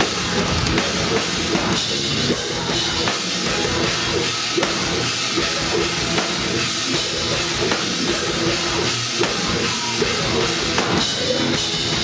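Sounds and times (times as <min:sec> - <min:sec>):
bass drum and cymbals: 0:00.0 - 0:12.0
live metal band playing: 0:00.0 - 0:12.0.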